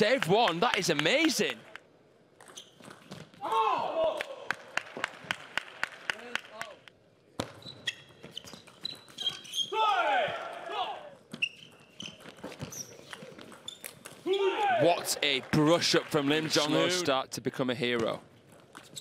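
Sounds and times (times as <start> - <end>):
players shouting: 3.4 - 4.6, 9.7 - 11.3, 14.2 - 15.5.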